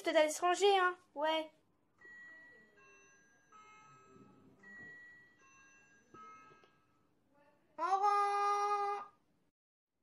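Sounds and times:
electronic school bell chime: 2.0s - 7.2s.

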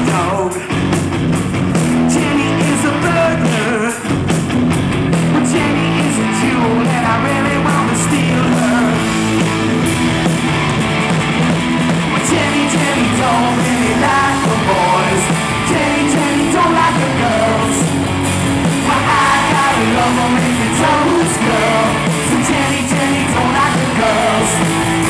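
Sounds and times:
male lead vocal: 0.0s - 0.9s, 2.0s - 4.3s, 5.2s - 9.4s, 12.1s - 25.0s
distorted electric guitars: 0.0s - 25.0s
drum kit with cymbal hits: 0.0s - 25.0s
electric bass: 0.0s - 25.0s.

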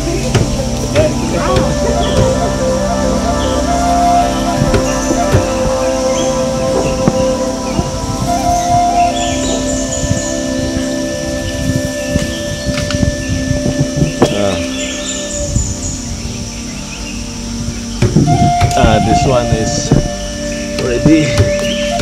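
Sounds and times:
background music with held notes: 0.0s - 22.0s
high chirps: 0.0s - 22.0s.

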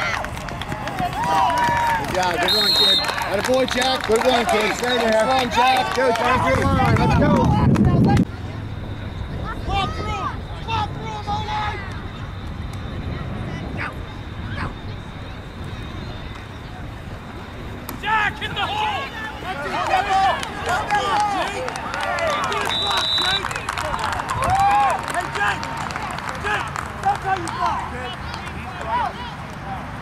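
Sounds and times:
spectators shouting and cheering: 0.0s - 8.2s, 17.9s - 30.0s.

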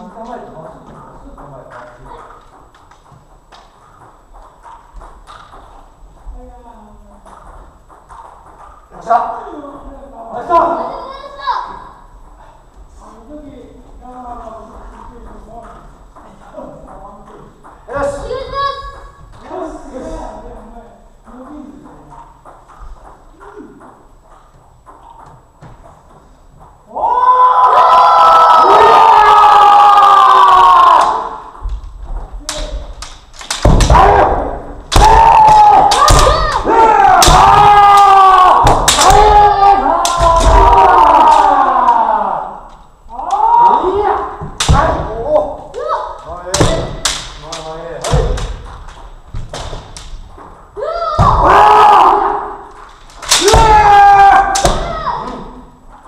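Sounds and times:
fencers shouting: 26.9s - 31.6s, 32.5s - 48.6s, 50.8s - 55.7s
bamboo swords striking armour: 32.5s - 38.0s, 38.6s - 41.4s, 44.4s - 45.3s, 46.5s - 48.7s, 53.0s - 55.0s.

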